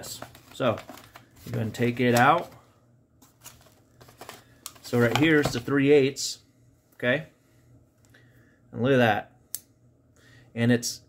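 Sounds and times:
person speaking: 0.0s - 2.6s, 4.8s - 7.4s.

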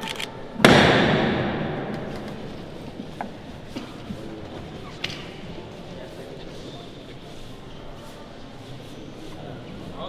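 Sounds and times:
heavy thud echoing in church: 0.6s - 3.4s.

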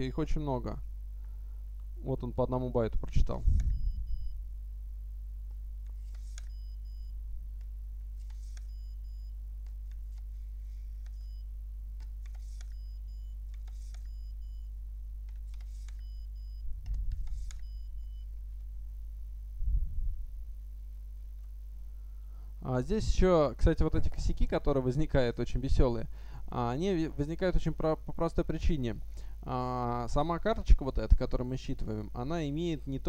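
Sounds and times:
low electrical hum: 0.0s - 33.0s
card swiping through reader: 5.9s - 6.7s, 8.2s - 8.9s, 12.0s - 14.3s, 15.3s - 16.2s, 16.8s - 17.8s.

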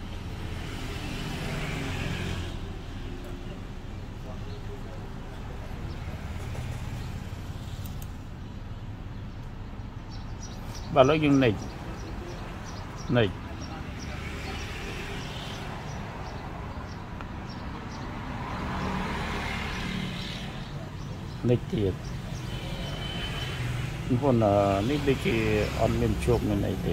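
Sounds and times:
road traffic rumble: 0.0s - 26.9s.

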